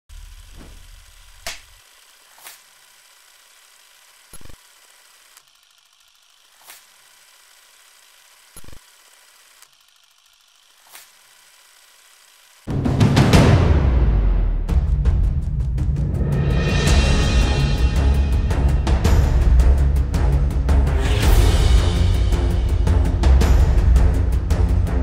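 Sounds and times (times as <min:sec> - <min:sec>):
sharp mechanical clicks: 0:00.1 - 0:12.7.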